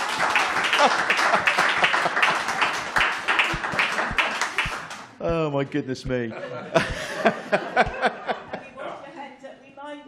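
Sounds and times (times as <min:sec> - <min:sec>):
small audience applauding: 0:00.0 - 0:05.2.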